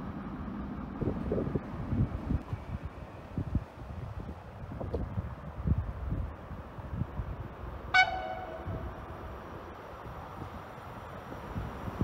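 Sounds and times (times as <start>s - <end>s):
locomotive horn toot: 7.9s - 8.9s.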